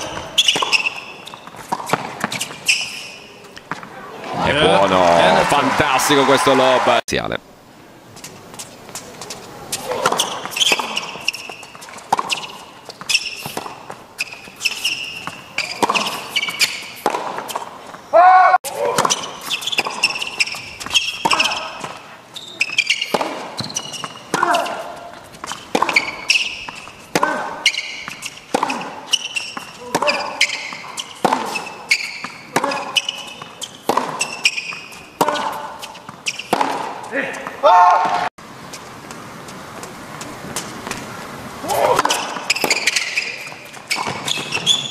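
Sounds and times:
ball bouncing on court: 0:00.0 - 0:02.7, 0:09.8 - 0:14.0, 0:15.1 - 0:17.7, 0:18.9 - 0:22.0, 0:22.6 - 0:38.3, 0:42.0 - 0:44.9
tennis ball hitting racket: 0:00.0 - 0:03.8, 0:08.6 - 0:17.7, 0:18.7 - 0:22.0, 0:22.6 - 0:38.3, 0:41.8 - 0:44.9
shoes squeaking on court: 0:00.0 - 0:05.4, 0:08.1 - 0:41.3, 0:41.9 - 0:44.9.

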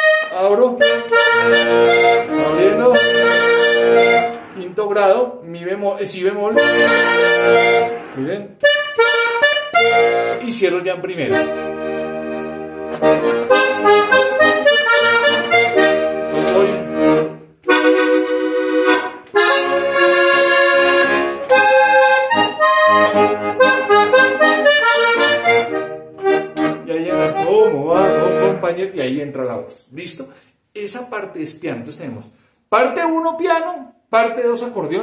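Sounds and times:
button accordion melody: 0:00.0 - 0:04.9, 0:06.1 - 0:28.8.

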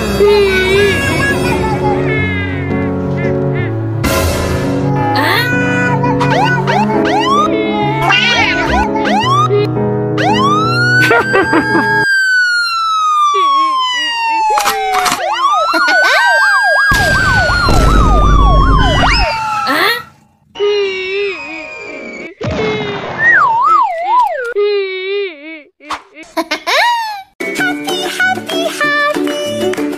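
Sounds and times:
high wavering cry: 0:05.1 - 0:09.7
bouncy music loop: 0:06.2 - 0:10.8
police siren wailing: 0:06.4 - 0:19.9.

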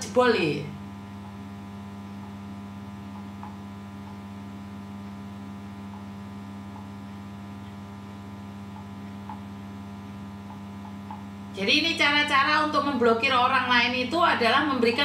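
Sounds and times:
low electrical hum: 0:00.0 - 0:15.0
faint small ticks: 0:01.2 - 0:01.4, 0:02.1 - 0:02.4, 0:03.1 - 0:04.3, 0:05.8 - 0:07.0, 0:08.7 - 0:09.5, 0:10.4 - 0:11.3.

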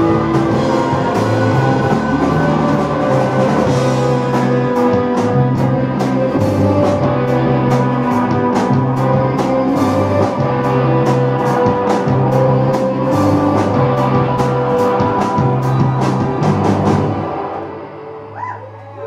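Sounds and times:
drum kit: 0:00.0 - 0:17.7
electric bass: 0:00.0 - 0:18.3
electric guitars: 0:00.0 - 0:19.0
keyboard: 0:00.0 - 0:19.0.

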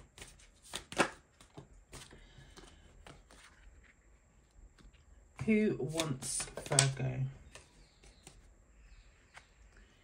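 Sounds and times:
cards being shuffled: 0:00.0 - 0:04.0.

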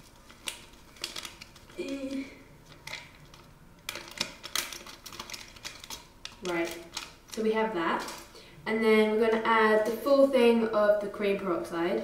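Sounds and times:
packet crinkling: 0:00.0 - 0:08.4.

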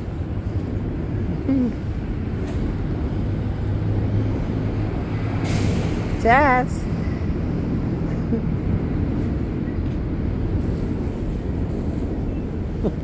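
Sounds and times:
street traffic rumble: 0:00.0 - 0:13.0.

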